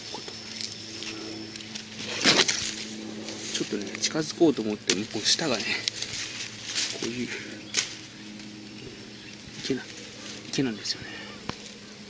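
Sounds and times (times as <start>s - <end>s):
leafy branches rustling: 0.0s - 12.0s.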